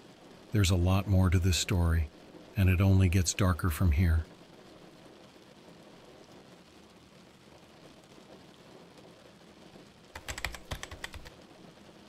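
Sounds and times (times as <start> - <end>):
faint steady hiss: 0.0 - 12.0
fast keyboard typing: 10.2 - 11.3.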